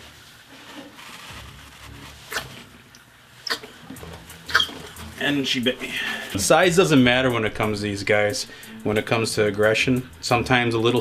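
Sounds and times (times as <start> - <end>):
faint rustling of gloved hand: 0.0 - 2.9.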